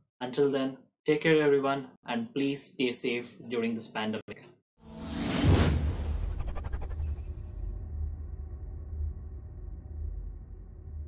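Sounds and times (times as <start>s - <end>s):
whoosh sound effect: 4.9s - 7.8s
deep low rumble: 5.8s - 11.0s.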